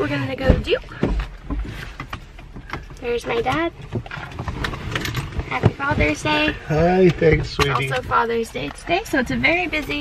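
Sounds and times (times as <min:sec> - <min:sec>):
low rumbling bump: 0:00.0 - 0:07.6.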